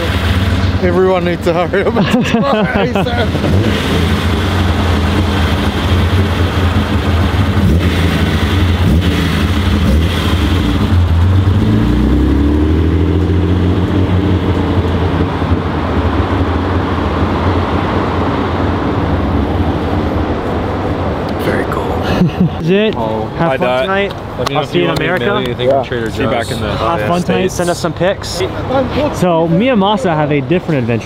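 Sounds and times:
car engine running: 0:00.0 - 0:22.0.

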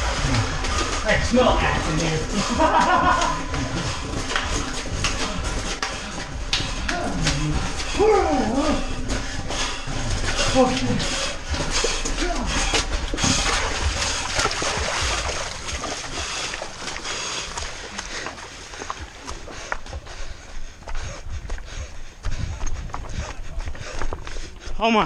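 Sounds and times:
footsteps running on rocky trail: 0:00.0 - 0:25.0.

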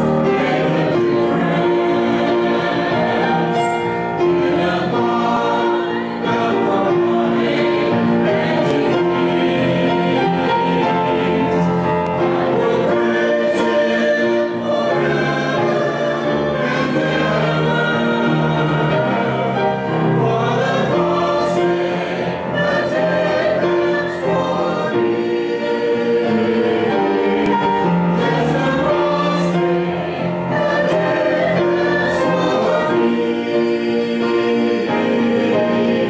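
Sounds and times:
choir singing: 0:00.0 - 0:36.0.

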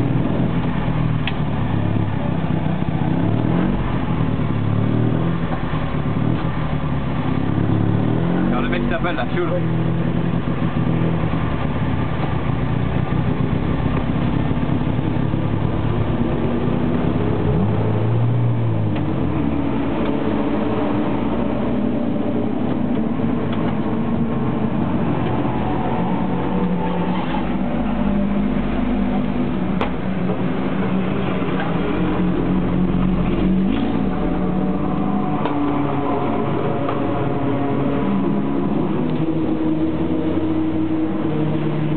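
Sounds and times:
racing car engine revving: 0:00.0 - 0:11.8, 0:13.3 - 0:41.9.

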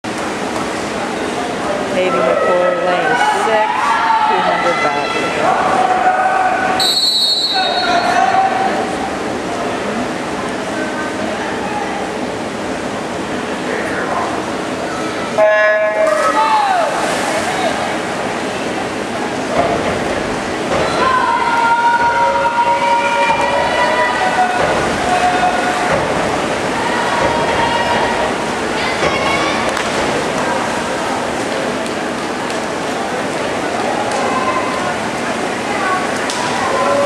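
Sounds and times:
crowd noise: 0:00.0 - 0:37.0
spectators cheering and shouting: 0:01.9 - 0:09.2, 0:15.2 - 0:18.1, 0:20.7 - 0:31.3, 0:33.5 - 0:37.0.

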